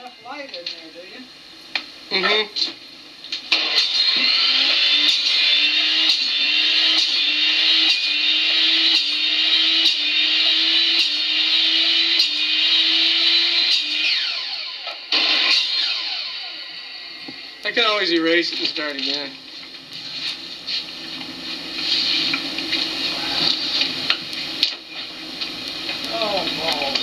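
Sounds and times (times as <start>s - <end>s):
miter saw motor running: 3.5s - 17.7s.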